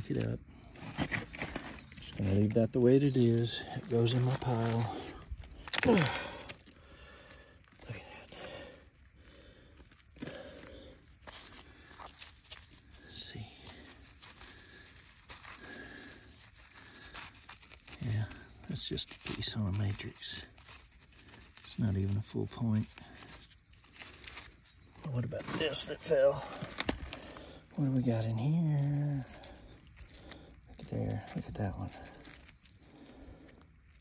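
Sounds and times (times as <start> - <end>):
hands digging in loose clay: 0.0 - 34.0
rock lumps being handled: 0.0 - 34.0
man's indistinct voice: 2.0 - 5.2, 30.7 - 32.3
person sighing: 5.7 - 7.2.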